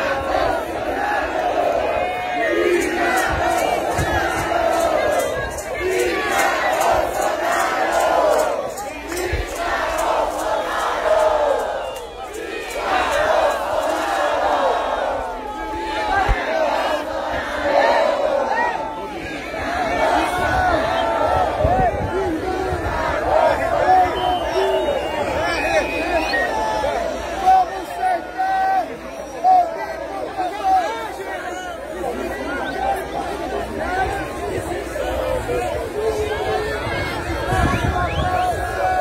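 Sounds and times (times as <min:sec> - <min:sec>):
crowd shouting and cheering: 0:00.0 - 0:39.0.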